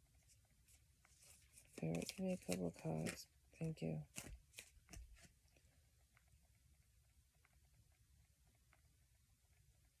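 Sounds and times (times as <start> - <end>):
cards being handled: 0.6 - 5.5.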